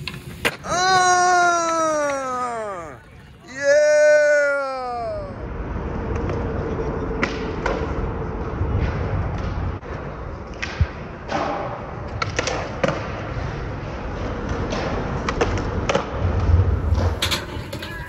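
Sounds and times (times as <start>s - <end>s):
skateboard wheels rolling on concrete: 0.0s - 18.0s.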